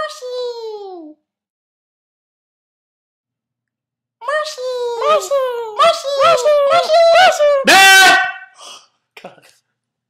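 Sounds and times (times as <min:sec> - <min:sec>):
high-pitched drawn-out voice: 0:04.2 - 0:08.0.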